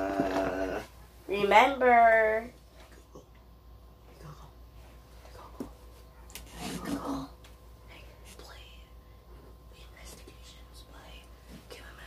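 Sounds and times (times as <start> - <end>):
steady low hum: 0.0 - 12.0
faint whispering: 4.1 - 4.6, 6.6 - 9.1, 9.7 - 12.0.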